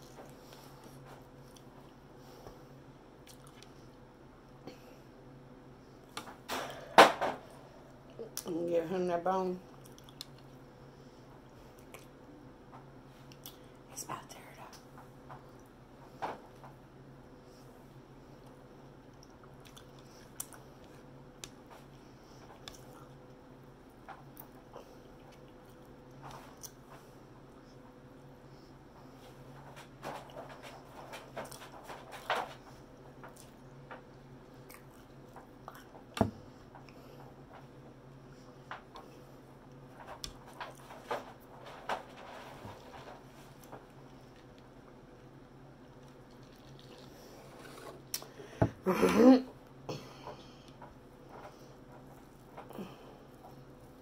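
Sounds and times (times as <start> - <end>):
steady low hum: 0.0 - 54.0
person chewing crispy food: 3.2 - 3.8, 9.8 - 10.6, 19.0 - 21.6, 45.8 - 48.4
mouth clicks and smacks eating: 9.8 - 10.5, 19.1 - 20.6.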